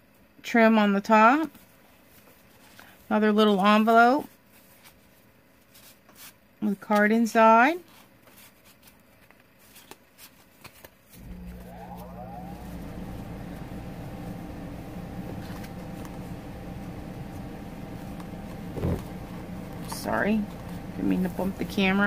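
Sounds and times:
mechanical hum with spin-up whine: 0:00.0 - 0:22.0.

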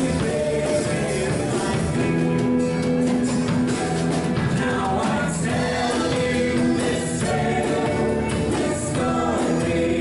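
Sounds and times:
choir singing a hymn: 0:00.0 - 0:02.1, 0:04.6 - 0:10.0
instrumental accompaniment: 0:00.0 - 0:10.0.

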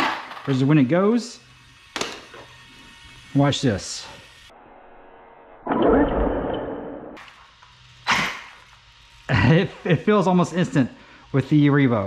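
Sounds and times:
electric toy truck motor whirring: 0:00.6 - 0:04.5.

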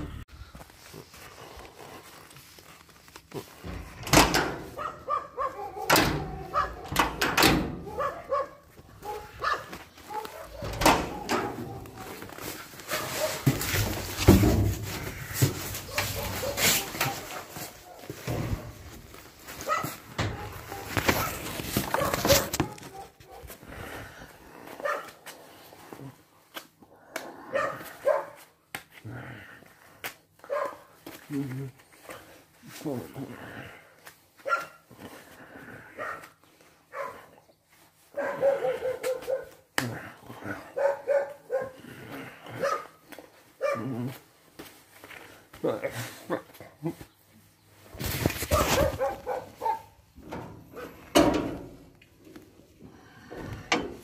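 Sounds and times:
dog barking: 0:04.7 - 0:13.6, 0:15.9 - 0:18.2, 0:19.6 - 0:23.6, 0:24.8 - 0:25.2, 0:27.5 - 0:28.4, 0:30.5 - 0:30.9, 0:34.4 - 0:34.8, 0:36.0 - 0:36.3, 0:36.9 - 0:37.4, 0:38.1 - 0:39.6, 0:40.5 - 0:41.8, 0:42.5 - 0:43.0, 0:43.6 - 0:44.1, 0:48.5 - 0:50.0.

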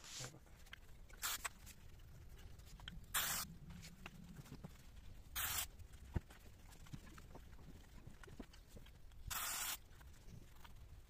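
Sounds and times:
aerosol can hissing: 0:03.1 - 0:03.4, 0:05.4 - 0:05.7, 0:09.3 - 0:09.8.

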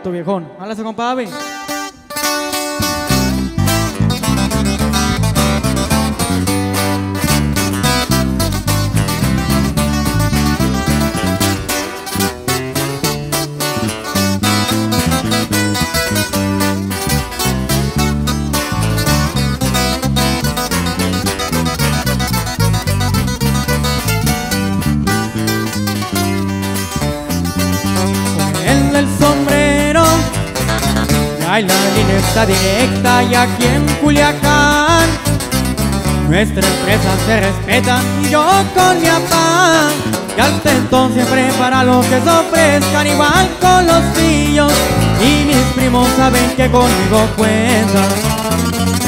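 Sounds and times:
strummed twelve-string guitar: 0:00.0 - 0:49.0
acoustic lead guitar picking: 0:01.1 - 0:49.0
steady bass line: 0:01.9 - 0:49.0.

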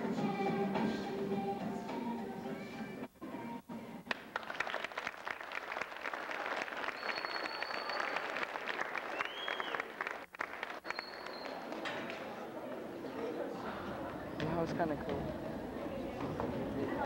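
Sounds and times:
audience applauding: 0:04.1 - 0:11.8
high whistles: 0:06.8 - 0:08.3, 0:09.0 - 0:09.9, 0:10.8 - 0:11.6.

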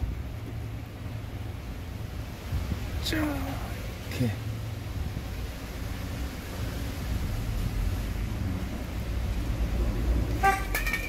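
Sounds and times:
car horn toot: 0:10.4 - 0:11.0.

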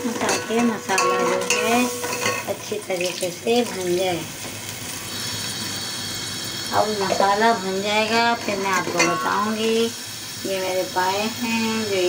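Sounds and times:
spices sizzling in a pot: 0:00.0 - 0:12.0.

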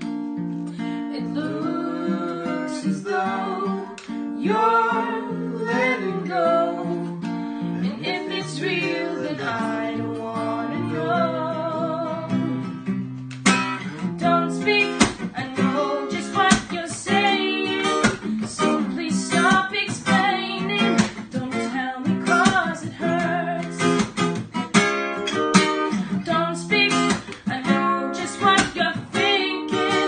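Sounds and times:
acoustic guitar strumming: 0:00.0 - 0:30.0
woman singing slow song: 0:00.8 - 0:12.6, 0:14.2 - 0:24.0, 0:26.0 - 0:30.0.

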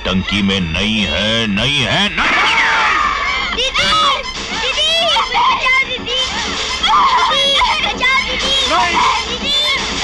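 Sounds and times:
people shouting: 0:01.9 - 0:09.9.

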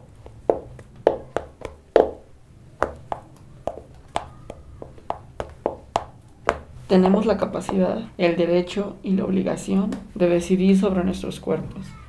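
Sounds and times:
sharp knocks on hard surface: 0:02.8 - 0:07.8.

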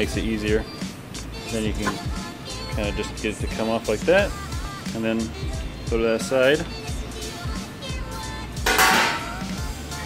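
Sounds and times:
background music: 0:00.0 - 0:10.0
harsh metallic clatter: 0:08.7 - 0:09.4.

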